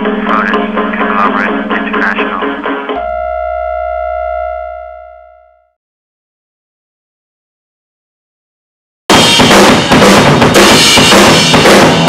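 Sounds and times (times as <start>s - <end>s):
held synthesized tone: 1.0s - 5.7s
low hum: 3.0s - 5.7s.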